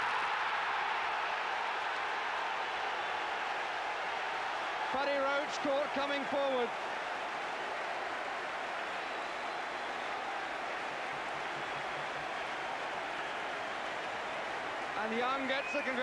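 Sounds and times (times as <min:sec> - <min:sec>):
stadium crowd cheering: 0:00.0 - 0:16.0.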